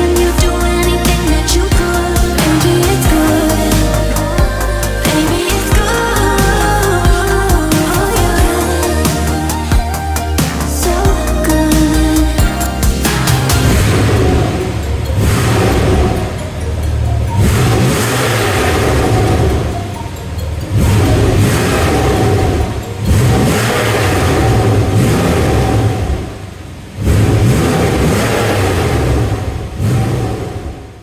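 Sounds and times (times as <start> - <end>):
car engine revving: 0.0 - 31.0.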